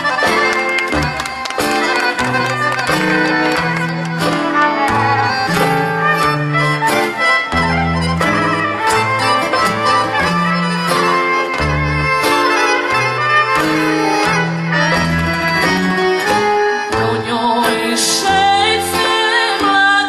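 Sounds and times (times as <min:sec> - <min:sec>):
accordion: 0:00.0 - 0:20.0
violin melody: 0:00.0 - 0:20.0.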